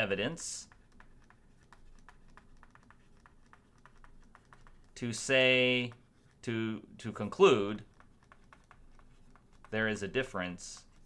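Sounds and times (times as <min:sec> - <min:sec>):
stylus tapping on tablet screen: 0:00.4 - 0:06.4, 0:07.7 - 0:11.0.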